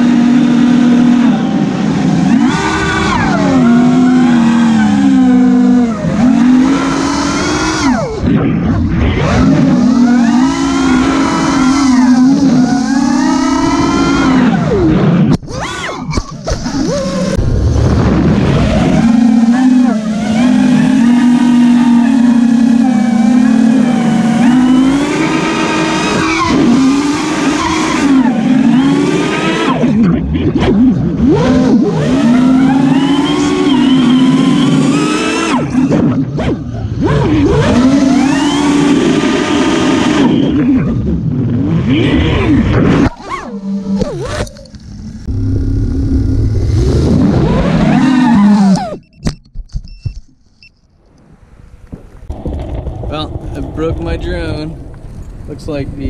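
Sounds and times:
drone motors whining: 0.0s - 55.7s.

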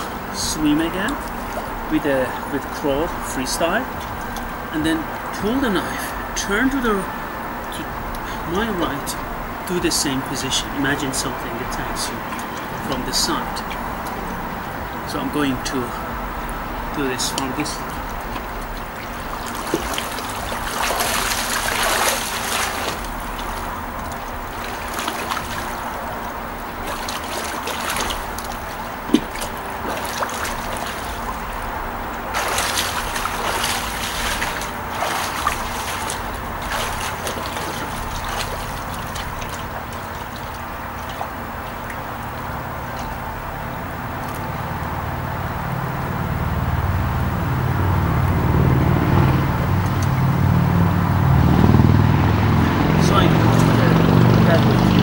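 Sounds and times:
pool water splashing: 0.0s - 55.0s.

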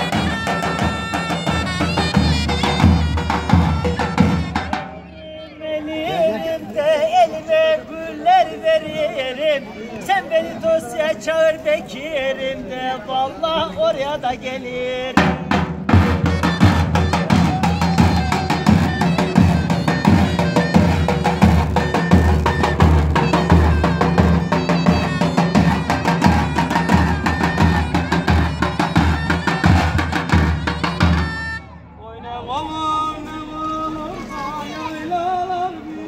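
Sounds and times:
reed pipe melody: 0.0s - 7.5s, 15.1s - 36.0s.

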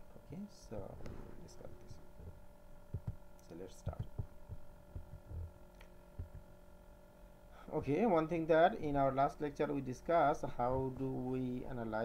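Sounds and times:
electrical hum: 0.0s - 12.0s
soft low thumps: 2.2s - 3.2s, 3.9s - 6.6s.

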